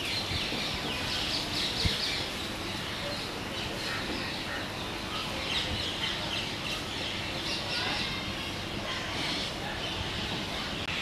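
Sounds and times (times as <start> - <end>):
faint voices: 0.3 - 11.0.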